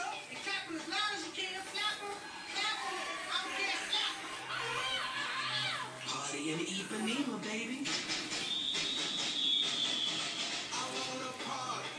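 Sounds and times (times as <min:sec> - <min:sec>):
high whistling tone: 0:08.2 - 0:10.7.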